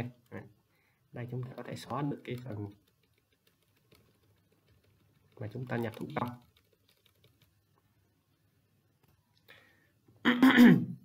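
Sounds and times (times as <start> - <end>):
keyboard keystrokes: 1.6 - 7.6.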